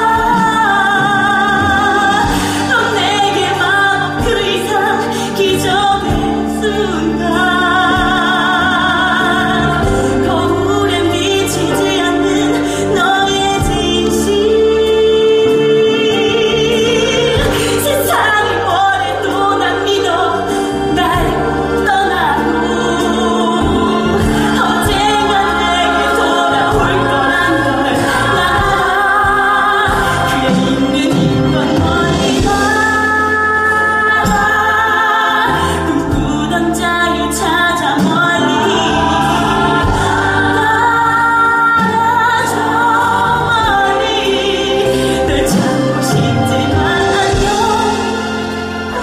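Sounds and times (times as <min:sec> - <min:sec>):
instrumental accompaniment: 0:00.0 - 0:49.0
woman singing a ballad: 0:00.0 - 0:49.0.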